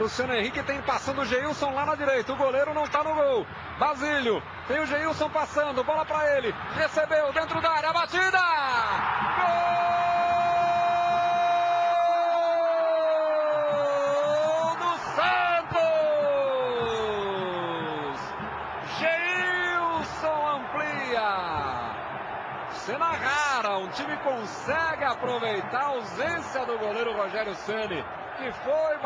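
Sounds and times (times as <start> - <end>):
stadium crowd noise: 0.0 - 29.0.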